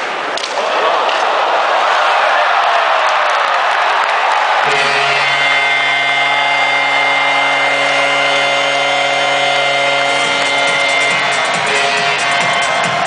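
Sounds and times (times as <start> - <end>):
crowd cheering: 0.0 - 13.0
goal horn blaring: 4.6 - 13.0.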